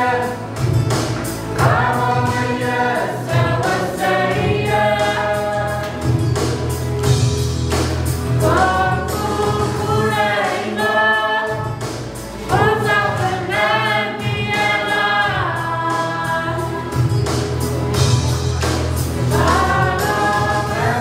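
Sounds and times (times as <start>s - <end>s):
choir singing gospel song: 0.0s - 21.0s.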